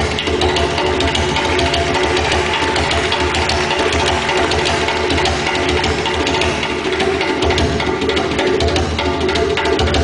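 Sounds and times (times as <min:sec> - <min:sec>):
djembe hand drumming: 0:00.0 - 0:10.0
other drums ringing: 0:00.0 - 0:10.0.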